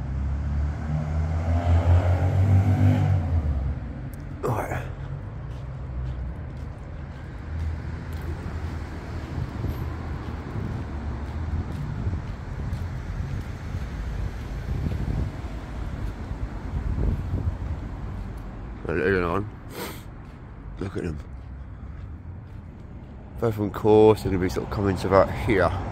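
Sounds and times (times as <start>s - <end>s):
low rumble of street ambience: 0.0s - 25.9s
wind buffeting microphone: 8.2s - 18.4s.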